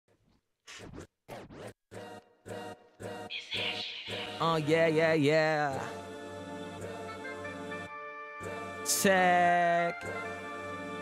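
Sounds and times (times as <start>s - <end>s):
turntable scratching vinyl: 0.2s - 1.8s, 3.3s - 5.0s
music beat: 3.3s - 5.9s.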